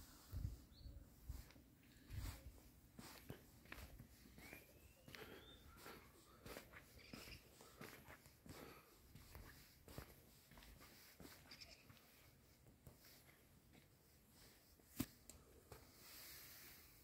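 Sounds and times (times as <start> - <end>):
footsteps on stone paving: 1.4 - 14.0
faint thin animal call: 11.4 - 12.3.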